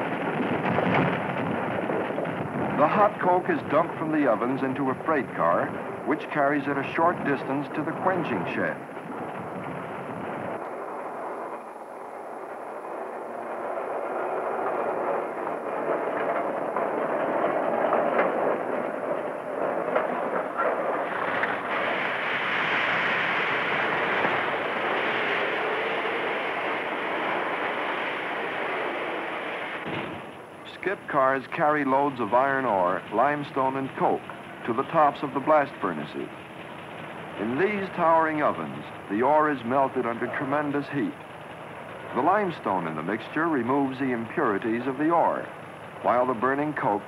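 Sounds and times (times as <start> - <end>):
rough industrial rumble of coke dumping: 0.0 - 10.6, 15.8 - 47.0.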